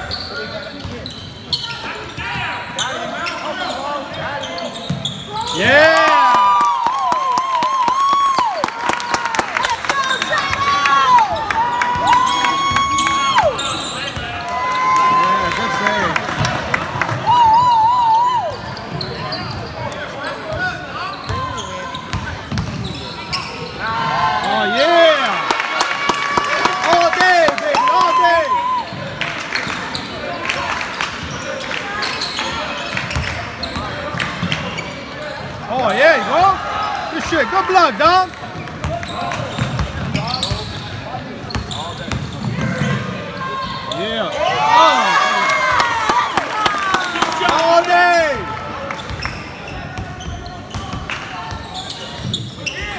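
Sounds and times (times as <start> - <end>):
sneakers squeaking on court: 0.0 - 5.7, 18.5 - 23.8, 28.9 - 30.3, 31.2 - 35.6, 38.5 - 44.6, 48.9 - 52.9.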